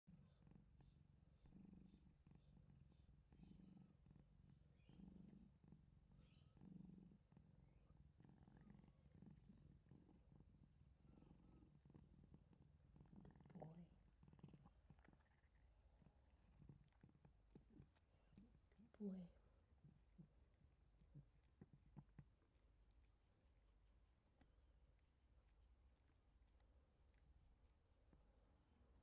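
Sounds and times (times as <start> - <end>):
cat purring: 0.0 - 29.0.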